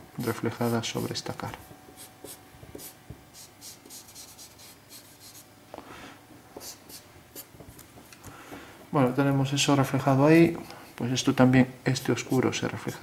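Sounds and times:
marker scratching on paper: 1.9 - 5.5, 6.6 - 7.5, 11.9 - 12.6.

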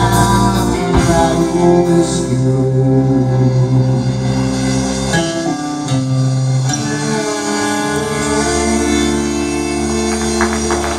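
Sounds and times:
guitars: 0.0 - 10.9
fiddle: 6.5 - 10.9.

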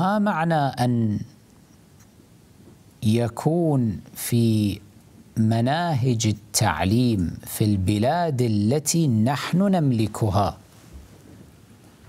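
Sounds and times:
man speaking: 0.0 - 1.3, 3.0 - 4.8, 5.4 - 10.6
faint room noise: 0.0 - 12.0.

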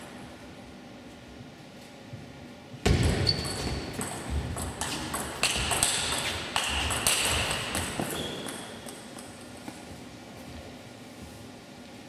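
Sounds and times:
table tennis ball hits: 2.8 - 9.4.

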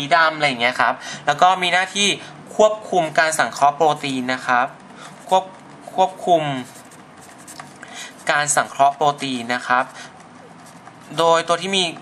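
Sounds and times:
person speaking: 0.0 - 12.0
pen scratching on paper: 3.0 - 12.0.

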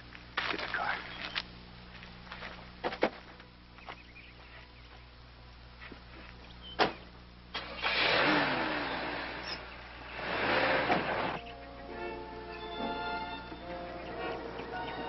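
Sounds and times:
car engine starting and running: 7.5 - 11.4.

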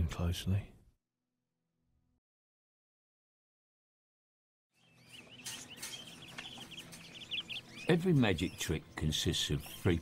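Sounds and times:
canaries chirping: 4.8 - 10.0.

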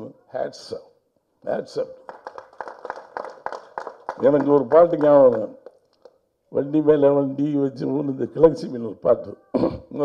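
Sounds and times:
audience clapping: 2.0 - 6.2.

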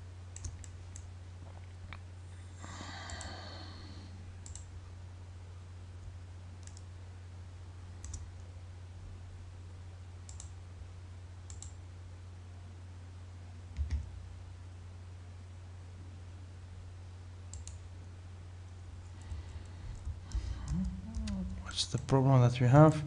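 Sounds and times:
steady low hum: 0.0 - 23.0
computer mouse clicks: 0.4 - 1.1, 3.0 - 3.4, 4.4 - 4.7, 6.6 - 6.9, 8.0 - 8.4, 10.3 - 10.6, 11.5 - 11.8, 17.5 - 17.8.

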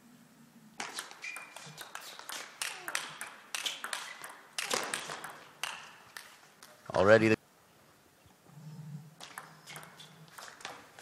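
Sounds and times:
table tennis ball clicking: 0.8 - 6.3, 9.2 - 10.8.

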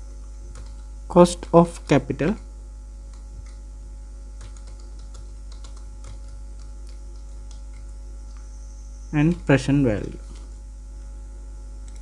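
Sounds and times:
low electrical hum: 0.0 - 12.0
computer keyboard typing: 0.5 - 2.5, 3.1 - 8.5, 9.2 - 10.6.

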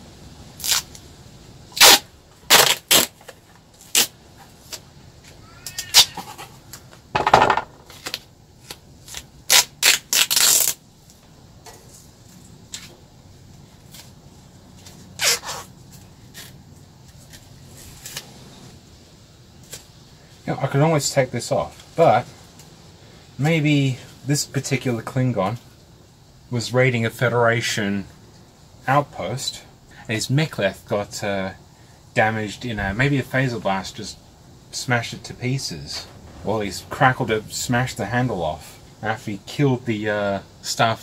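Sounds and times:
adhesive tape ripping: 0.6 - 1.0, 1.8 - 4.8, 5.7 - 6.2, 7.9 - 10.8, 14.9 - 15.7, 16.3 - 18.3.

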